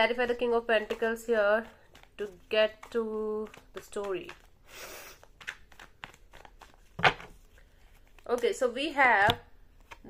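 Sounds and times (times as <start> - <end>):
cards being shuffled: 0.1 - 10.0.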